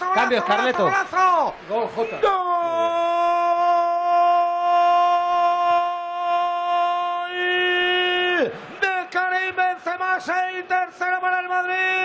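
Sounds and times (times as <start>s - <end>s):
excited talk: 0.0s - 12.0s
man's long goal shout: 2.2s - 9.8s.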